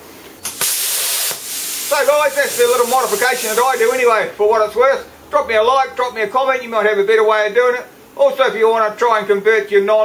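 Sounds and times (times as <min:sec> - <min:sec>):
rushing hiss of air: 0:00.5 - 0:04.2
speech: 0:01.9 - 0:10.0.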